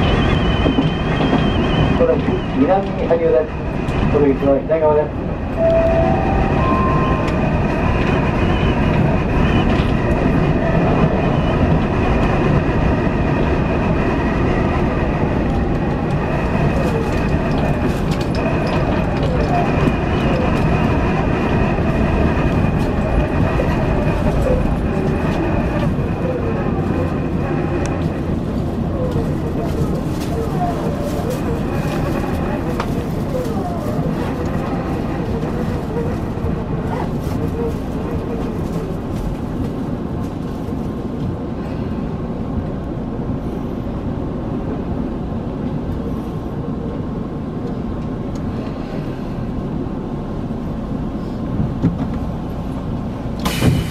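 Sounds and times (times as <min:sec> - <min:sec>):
high whine of traction equipment: 0:00.0 - 0:14.3
train running on rails: 0:00.0 - 0:53.9
train braking: 0:05.6 - 0:10.1.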